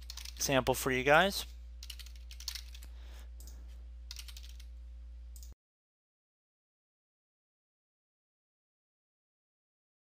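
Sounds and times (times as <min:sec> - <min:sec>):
computer keyboard typing: 0:00.0 - 0:00.4, 0:01.8 - 0:04.7
steady low hum: 0:00.0 - 0:05.6.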